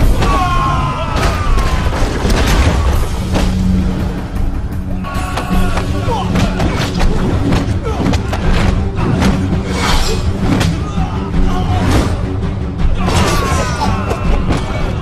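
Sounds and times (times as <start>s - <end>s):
fighters shouting: 0.0s - 2.1s, 4.9s - 15.0s
action film music score: 0.0s - 15.0s.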